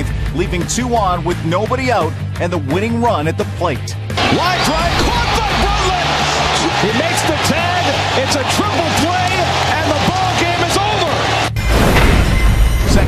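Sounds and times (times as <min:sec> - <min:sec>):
excited sports commentary: 0:00.0 - 0:11.5
background music with low beat: 0:00.0 - 0:13.0.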